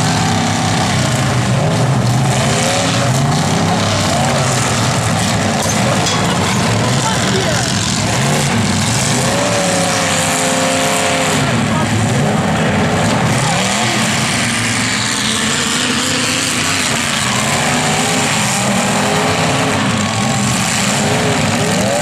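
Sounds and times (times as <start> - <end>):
car engines revving: 0.0 - 22.0.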